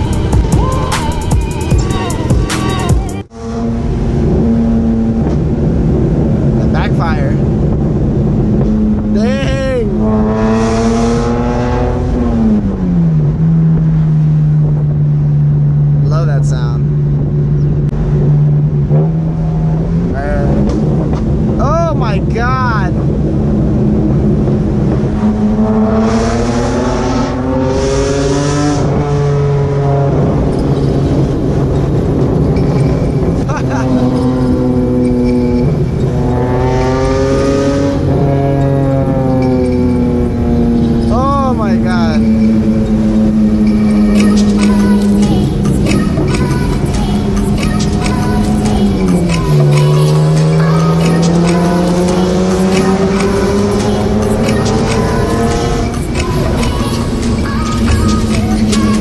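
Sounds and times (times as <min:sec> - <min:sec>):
car engine from inside cabin: 0:03.1 - 0:59.0.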